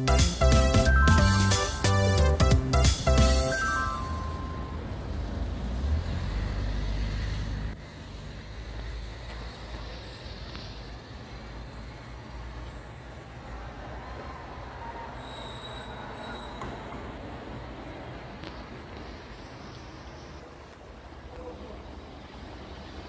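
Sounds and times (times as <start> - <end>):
traffic hiss: 1.5 - 15.2, 15.8 - 23.0.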